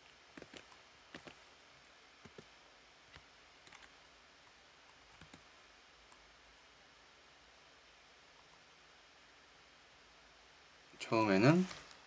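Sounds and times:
computer keyboard clicks: 0:00.4 - 0:01.4, 0:03.1 - 0:03.9, 0:05.1 - 0:05.4.

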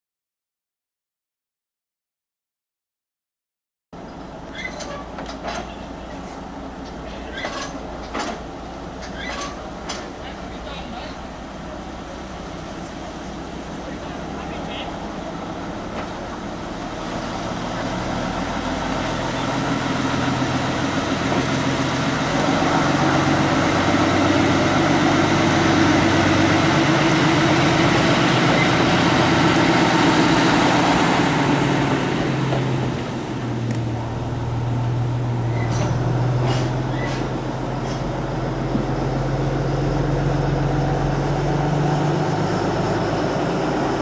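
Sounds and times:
diesel locomotive engine passing: 0:04.0 - 0:44.0.

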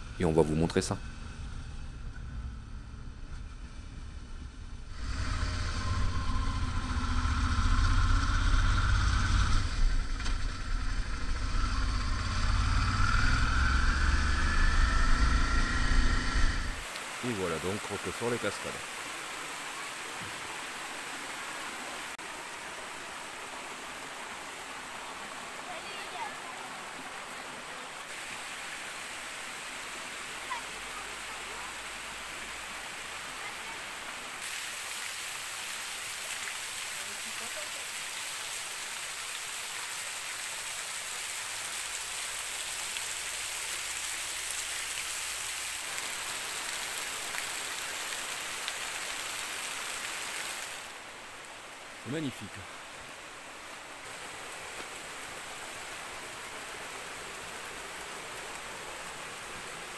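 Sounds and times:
rush of falling water: 0:00.0 - 0:01.0, 0:04.9 - 0:59.9.

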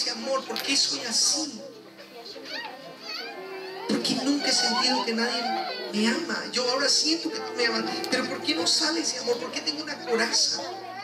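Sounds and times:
soft keyboard music: 0:00.0 - 0:11.0.

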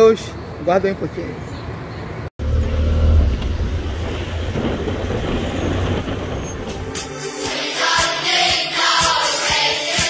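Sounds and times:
wind rumble: 0:02.5 - 0:07.1.

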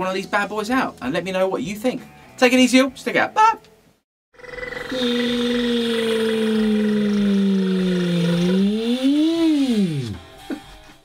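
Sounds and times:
held pitched tone bending: 0:04.4 - 0:10.2.

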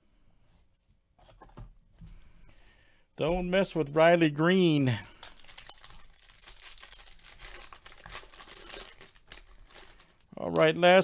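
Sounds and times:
foil wrapper crinkling and tearing: 0:05.2 - 0:11.0.

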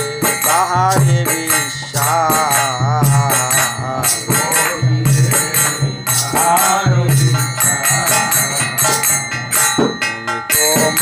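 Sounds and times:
hand cymbals ringing: 0:00.0 - 0:11.0
man singing: 0:00.0 - 0:11.0.

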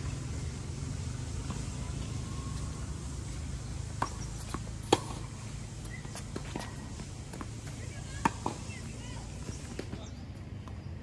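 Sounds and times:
tennis ball bouncing: 0:01.4 - 0:10.0
tennis ball struck by racket: 0:03.8 - 0:08.8.

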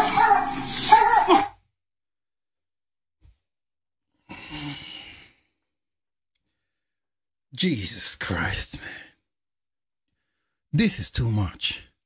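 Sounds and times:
man sighing heavily: 0:04.2 - 0:05.4.

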